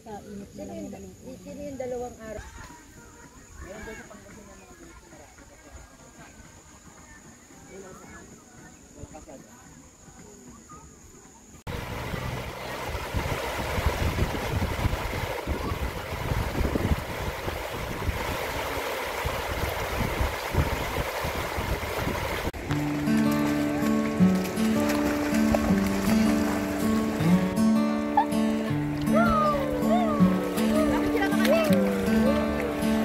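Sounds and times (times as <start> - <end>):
river water rushing over weir: 11.7 - 33.0.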